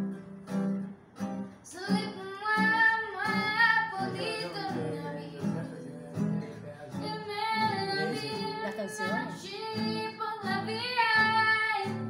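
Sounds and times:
acoustic guitar: 0.0 - 12.0
woman singing: 1.6 - 12.0.

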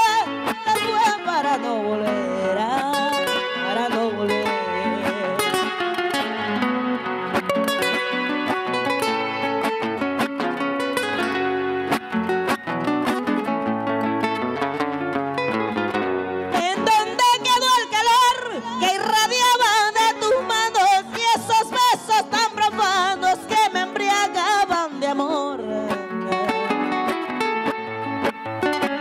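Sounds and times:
two acoustic guitars playing: 0.0 - 29.0.

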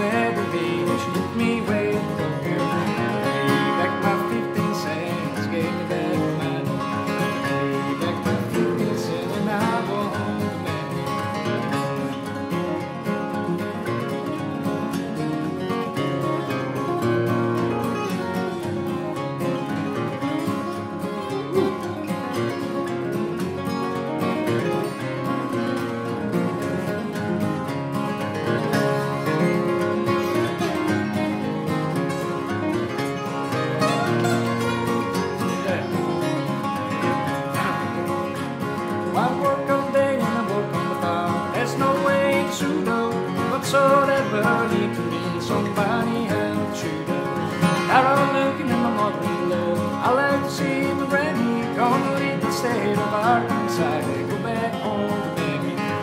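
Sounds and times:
acoustic guitars picking: 0.0 - 56.0.

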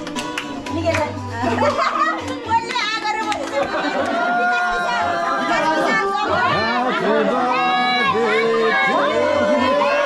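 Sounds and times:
crowd chattering excitedly: 0.0 - 10.0.

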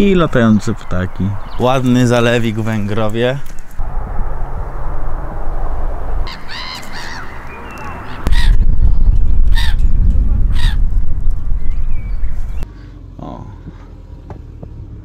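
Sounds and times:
harsh bird calls: 0.0 - 3.8, 6.2 - 12.7
wind buffeting microphone: 0.0 - 12.6.

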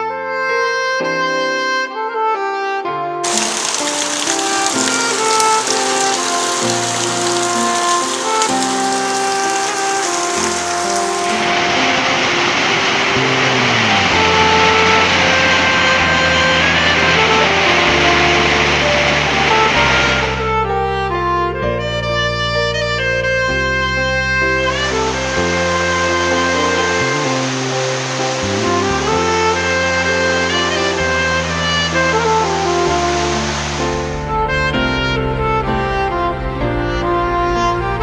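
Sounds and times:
instrumental music: 3.1 - 38.0
heavy rain hissing: 3.2 - 20.4, 24.6 - 36.2.

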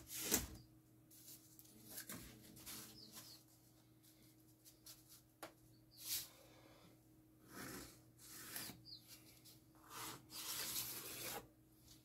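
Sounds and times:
pencil scratching along plastic ruler: 7.4 - 9.0, 9.8 - 11.5.

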